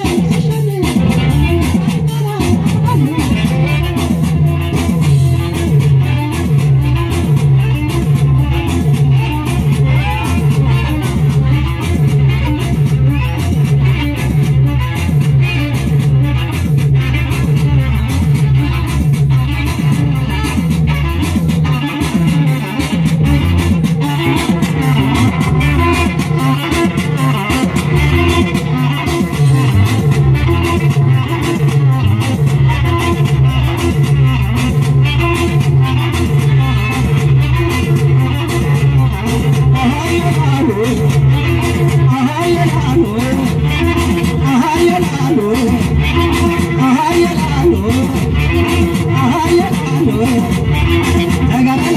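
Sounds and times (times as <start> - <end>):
band music through loudspeakers: 0.0 - 51.9
bass guitar: 0.0 - 51.9
electric guitar: 0.0 - 51.9.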